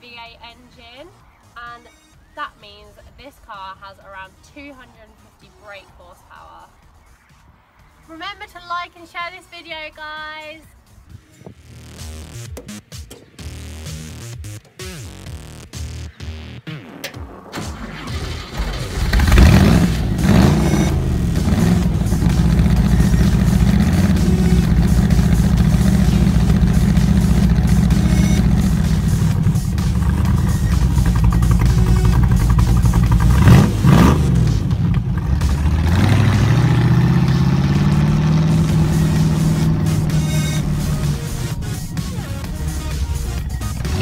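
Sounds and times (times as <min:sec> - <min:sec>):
car engine idling loudly: 0:18.2 - 0:44.0.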